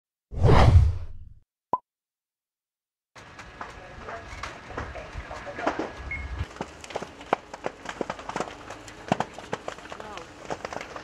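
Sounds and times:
whoosh with deep rumble: 0.3s - 1.3s.

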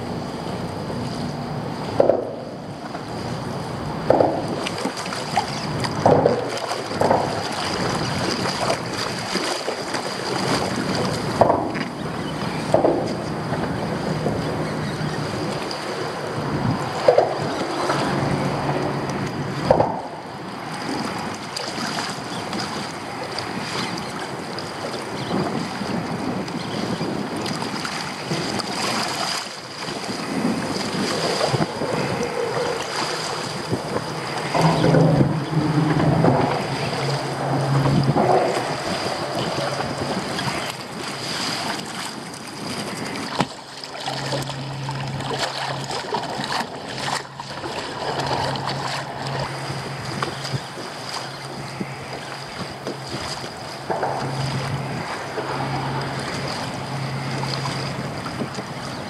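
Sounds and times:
water splashing against kayak hull: 0.0s - 59.0s
wind buffeting microphone: 0.0s - 59.0s
low hum: 10.2s - 21.4s, 30.5s - 59.0s.

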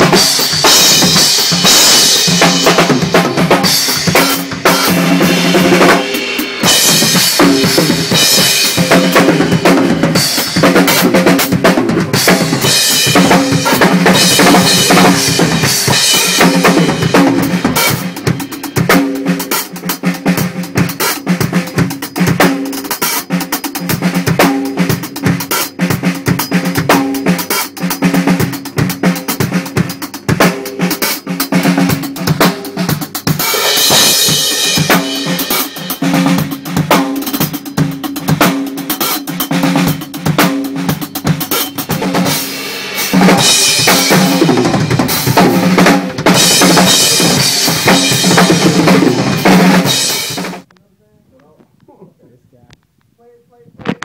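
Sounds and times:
drum kit playing: 0.0s - 50.7s.

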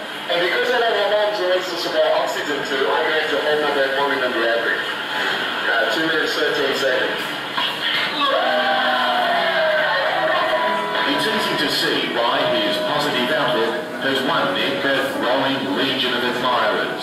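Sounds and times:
film speech over loudspeakers: 0.0s - 5.0s, 5.6s - 17.0s.

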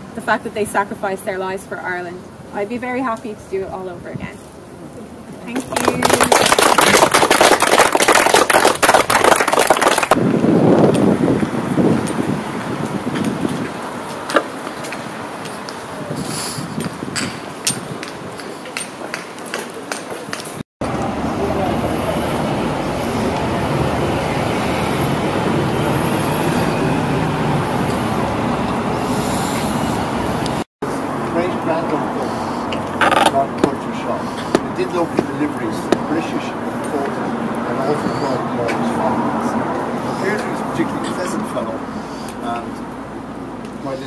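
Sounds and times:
street traffic: 0.0s - 44.0s
group clapping: 5.6s - 10.2s
wind on microphone: 10.1s - 14.2s, 15.8s - 18.5s.

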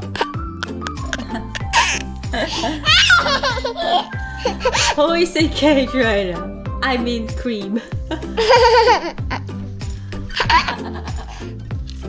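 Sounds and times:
background music: 0.0s - 12.0s
toddler giggling: 1.1s - 5.0s, 8.4s - 9.2s.

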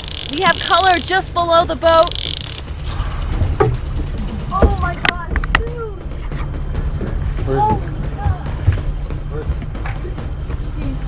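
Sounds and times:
sharp clicks: 0.0s - 2.8s.

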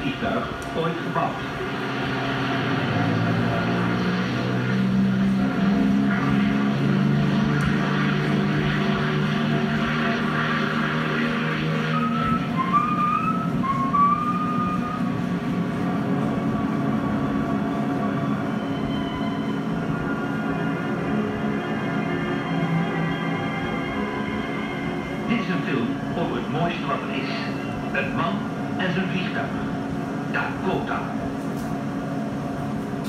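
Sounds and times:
propeller plane engines droning: 0.0s - 33.0s.

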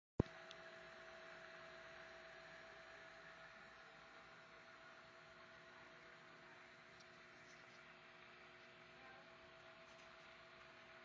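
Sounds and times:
faint hum with hiss: 0.2s - 11.0s.

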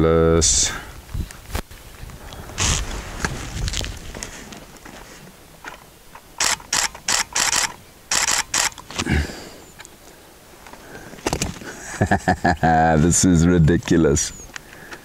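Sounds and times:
camera shutter firing: 6.4s - 9.0s.

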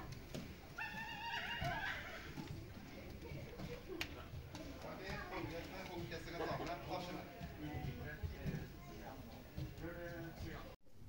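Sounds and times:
children calling out: 0.8s - 2.6s.

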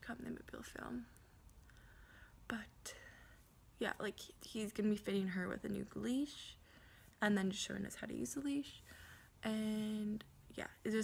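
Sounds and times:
soft woman's voice: 0.0s - 1.2s, 2.5s - 3.1s, 7.2s - 11.0s.

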